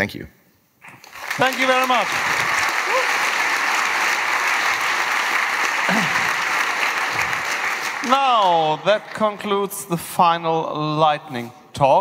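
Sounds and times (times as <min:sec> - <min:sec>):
audience applauding: 0:00.8 - 0:09.7.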